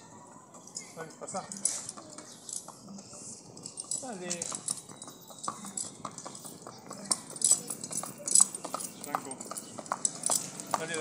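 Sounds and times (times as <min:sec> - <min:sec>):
horse hooves trotting on asphalt: 0:00.1 - 0:11.0.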